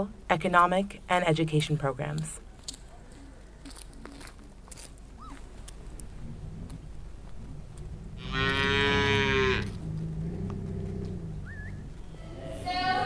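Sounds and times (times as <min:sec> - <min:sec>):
cow mooing: 0:08.2 - 0:12.0.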